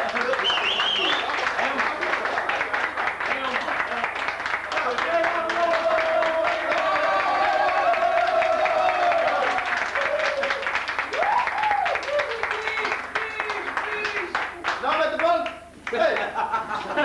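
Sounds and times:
group clapping hands: 0.0 - 17.0.

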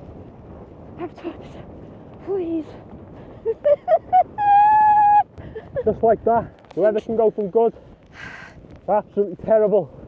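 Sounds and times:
woman whimpering and wailing: 4.2 - 5.3.

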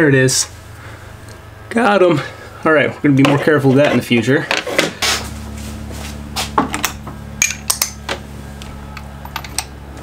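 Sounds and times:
low hum: 0.0 - 10.0
metal tools clinking: 6.9 - 8.0, 9.0 - 9.7.

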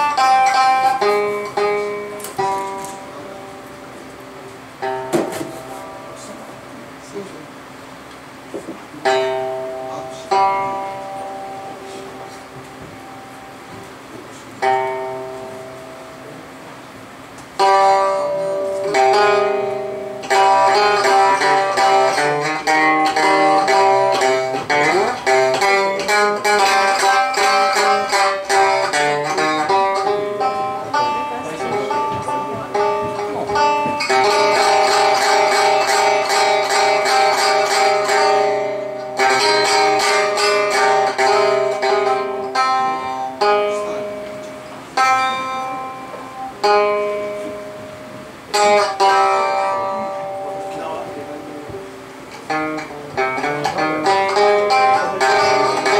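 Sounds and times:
plucked string instrument: 0.0 - 55.9.

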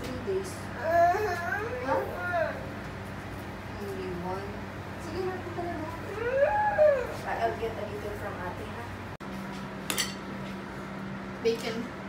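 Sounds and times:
steady low hum: 0.0 - 12.0
cutlery clinking on a plate: 9.9 - 10.2.

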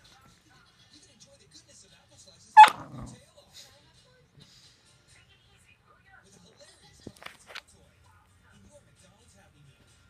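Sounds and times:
dog barking sharply: 2.6 - 3.0.

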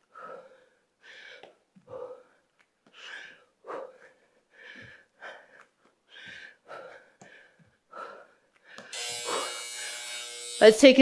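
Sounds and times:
woman breathing hard: 0.0 - 9.6
electronic timer buzzer: 8.9 - 11.0.

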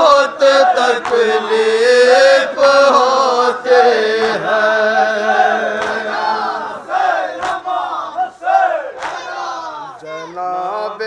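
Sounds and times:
men chanting in chorus: 0.0 - 11.0
chest-beating slaps: 0.9 - 1.4, 4.2 - 4.5, 5.7 - 6.3, 7.4 - 7.9, 8.9 - 10.1.

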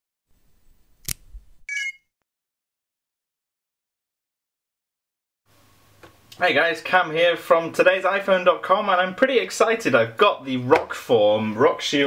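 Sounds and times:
sharp click: 1.0 - 1.3.

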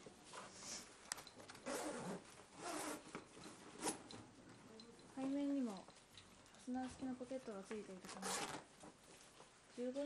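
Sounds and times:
nylon fabric rubbing: 1.6 - 3.1
raspy zipper strokes: 1.6 - 3.1, 8.1 - 8.6.

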